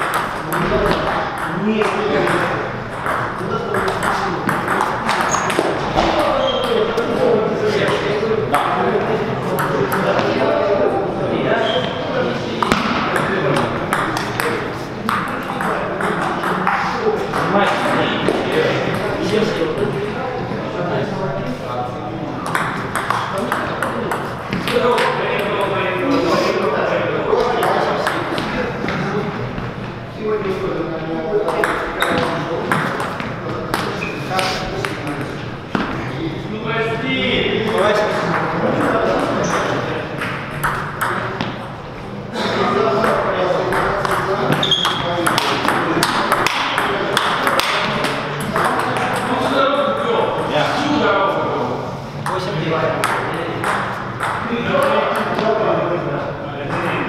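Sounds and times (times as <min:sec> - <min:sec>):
ball bouncing on table: 0:00.0 - 0:06.8, 0:12.6 - 0:17.5, 0:22.4 - 0:25.1, 0:31.5 - 0:34.1, 0:37.7 - 0:41.6, 0:43.0 - 0:49.3, 0:53.0 - 0:55.4
ping pong ball clicking off paddles: 0:00.0 - 0:07.1, 0:12.6 - 0:19.1, 0:22.4 - 0:25.7, 0:31.4 - 0:34.0, 0:37.7 - 0:41.8, 0:43.0 - 0:49.5, 0:53.0 - 0:55.4
voices talking: 0:00.0 - 0:57.0.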